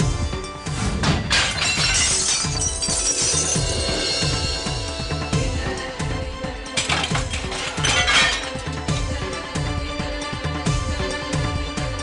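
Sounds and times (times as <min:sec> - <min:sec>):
vase smashing: 0:01.0 - 0:03.9, 0:06.7 - 0:09.0
broken pieces tinkling: 0:01.3 - 0:04.4, 0:06.8 - 0:09.0.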